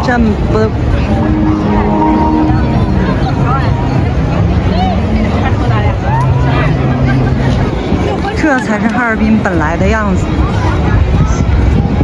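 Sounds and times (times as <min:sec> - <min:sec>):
low steady drone: 0:00.0 - 0:08.4
crowd chatter: 0:00.0 - 0:12.0.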